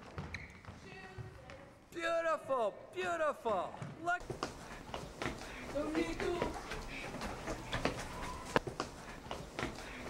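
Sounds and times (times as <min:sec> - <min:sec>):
faint voices echoing: 0:00.0 - 0:10.0
footsteps on wooden floor: 0:03.8 - 0:10.0.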